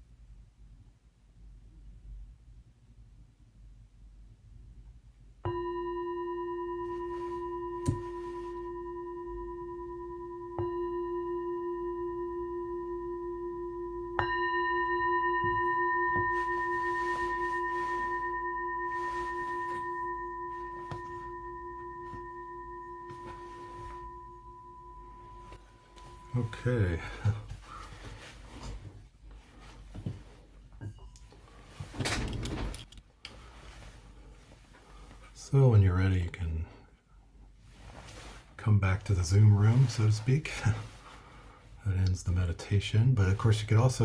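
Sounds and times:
singing bowl ringing: 0:05.4 - 0:27.4, 0:30.8 - 0:31.5.

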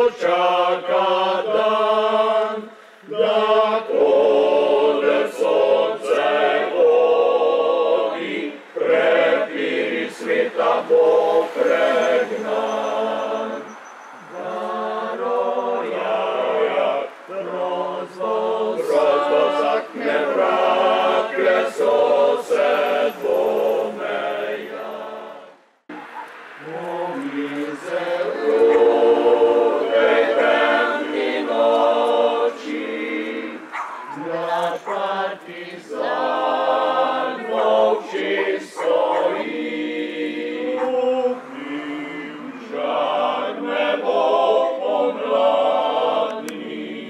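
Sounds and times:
choir singing unaccompanied: 0:00.0 - 0:47.0.

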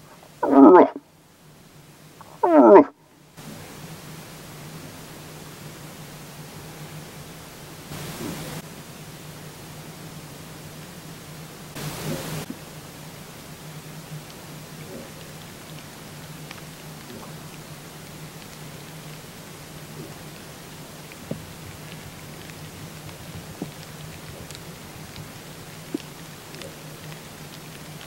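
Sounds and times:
steady low hum: 0:00.0 - 0:28.0
moose calls: 0:00.2 - 0:01.0, 0:02.2 - 0:02.9.

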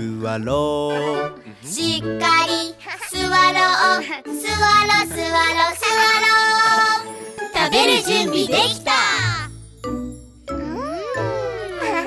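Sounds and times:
backing music: 0:00.3 - 0:12.0
child singing: 0:01.6 - 0:09.4.

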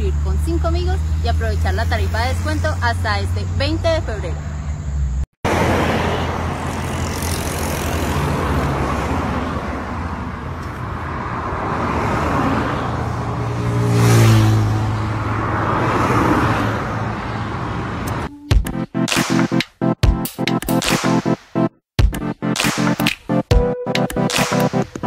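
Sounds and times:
vehicle engine hum passing: 0:00.0 - 0:18.4
road traffic passing: 0:00.0 - 0:21.8, 0:22.5 - 0:25.0.

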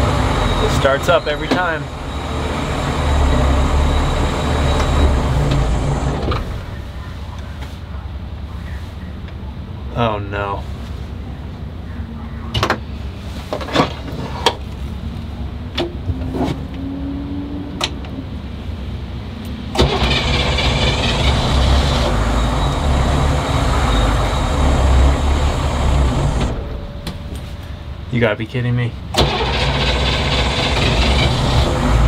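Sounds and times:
starter motor cranking engine: 0:19.8 - 0:22.2, 0:29.1 - 0:32.0
low rumble: 0:22.4 - 0:28.3.

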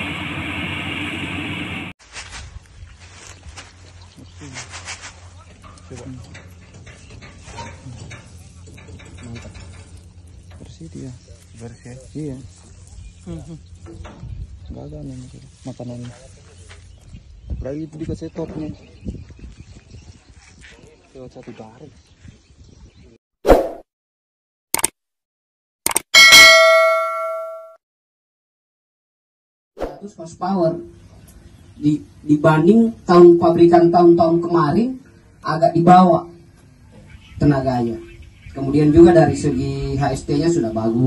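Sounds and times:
quick clicks: 0:24.7 - 0:25.0, 0:25.8 - 0:26.1
notification bell ding: 0:26.2 - 0:27.8.

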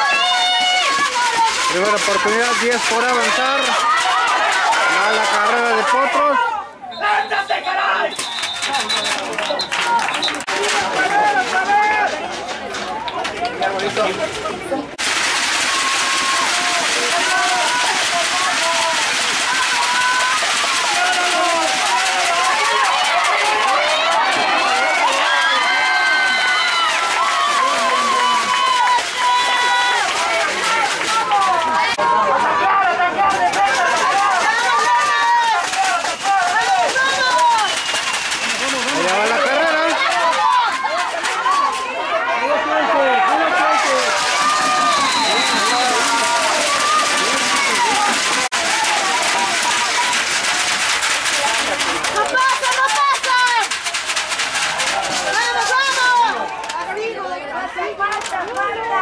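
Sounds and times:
people shouting and talking: 0:00.0 - 0:59.0.

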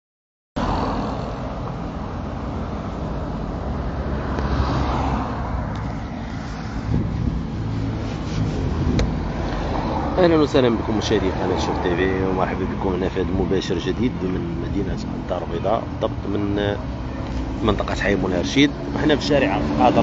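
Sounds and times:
cars driving past: 0:00.6 - 0:20.0.

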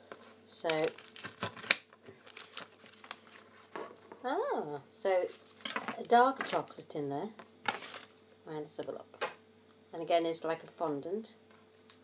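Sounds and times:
knife crunching through wafer: 0:00.8 - 0:03.1.

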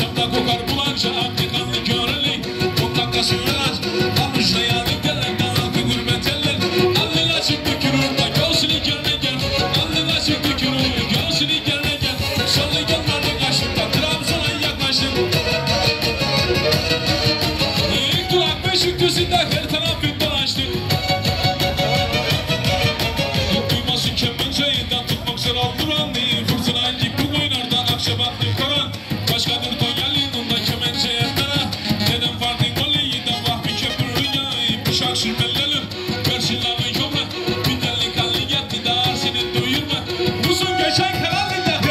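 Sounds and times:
bowed fiddle folk tune: 0:00.0 - 0:41.9
keyboard with steady beat: 0:00.0 - 0:41.9.

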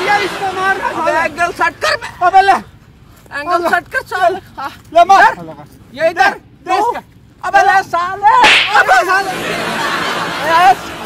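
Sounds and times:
sharp smack of a blow: 0:08.4 - 0:09.0.

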